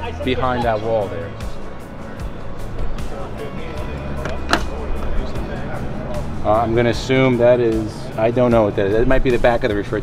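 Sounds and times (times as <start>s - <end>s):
background music: 0.0s - 10.0s
distant voices: 0.0s - 10.0s
door latch click: 4.2s - 4.8s.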